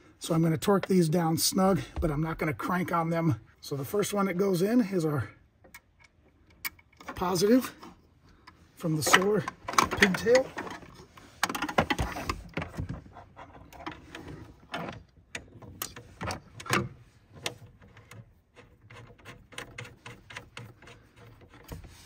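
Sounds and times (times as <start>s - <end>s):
small metallic clicks and taps: 5.6s - 7.3s.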